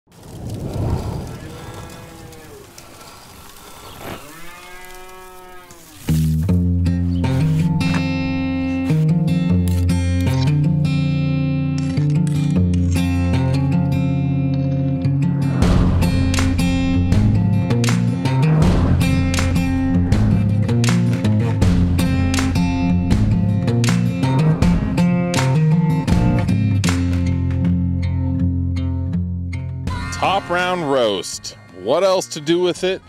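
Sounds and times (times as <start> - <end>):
cattle mooing: 1.2 - 3.0, 4.0 - 6.4
acoustic guitar strumming: 6.1 - 33.0.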